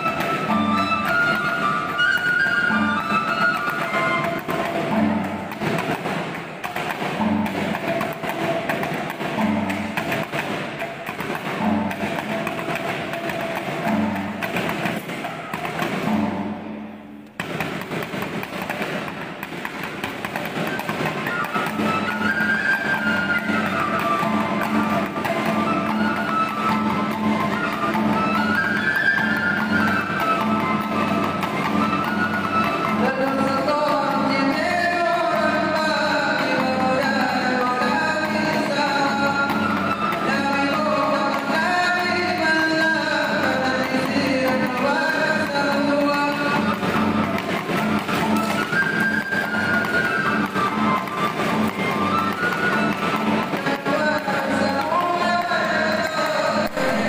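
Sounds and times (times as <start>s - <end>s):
wavering melody: 0.0s - 6.0s, 20.5s - 41.3s
gong and percussion: 0.0s - 57.0s.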